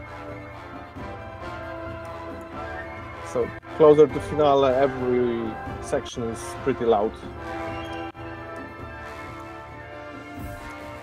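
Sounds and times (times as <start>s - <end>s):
orchestral music: 0.0s - 11.0s.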